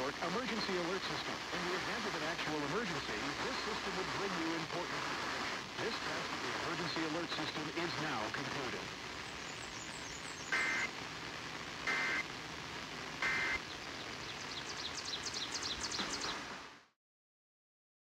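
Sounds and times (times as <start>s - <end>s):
radio hiss: 0.0s - 17.0s
two-tone digital data warble: 10.5s - 10.9s, 11.9s - 12.2s, 13.2s - 13.6s.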